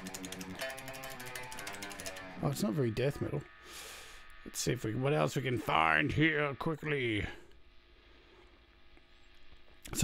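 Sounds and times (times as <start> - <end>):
person speaking: 0.0 - 3.5, 4.5 - 7.5
faint electrical hum: 0.0 - 10.0.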